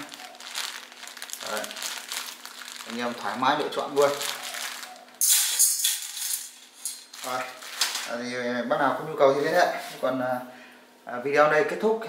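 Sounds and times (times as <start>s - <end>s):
cable snares clinking in metal bowl: 5.2s - 8.1s.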